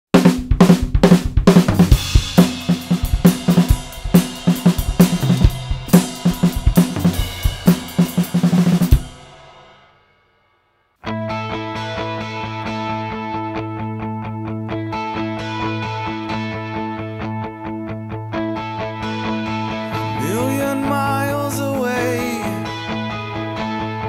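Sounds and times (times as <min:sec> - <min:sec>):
drum kit playing: 0:00.1 - 0:09.8, 0:19.9 - 0:22.8
guitar intro of recorded song: 0:00.5 - 0:09.3, 0:11.0 - 0:24.0
cymbal crash ringing out: 0:01.9 - 0:10.2.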